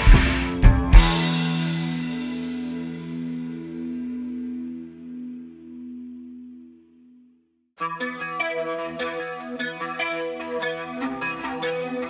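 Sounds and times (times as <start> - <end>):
quickly picked guitar notes: 0.0 - 6.8, 7.8 - 12.0
final guitar chord ringing out: 0.0 - 7.2.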